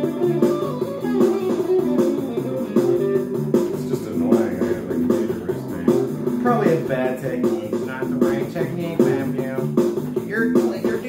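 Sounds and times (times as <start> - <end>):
electric guitar playing: 0.0 - 11.0
low bass line: 2.4 - 10.2.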